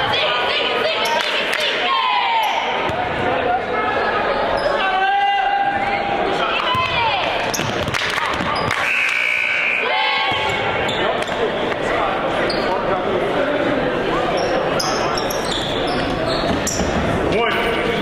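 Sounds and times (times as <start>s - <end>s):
crowd chatter echoing: 0.0s - 18.0s
basketball bouncing: 6.7s - 8.8s
whistle blast: 8.7s - 10.6s.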